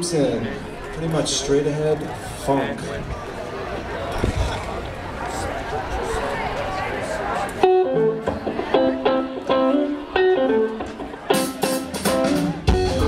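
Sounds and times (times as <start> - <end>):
electric guitar riff: 7.6 - 13.0
drum kit with cymbals: 10.9 - 13.0.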